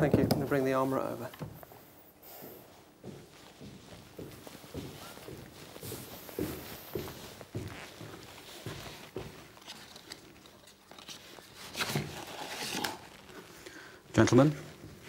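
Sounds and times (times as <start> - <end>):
footsteps: 0.0 - 15.0
rustling and handling noises: 0.0 - 15.0.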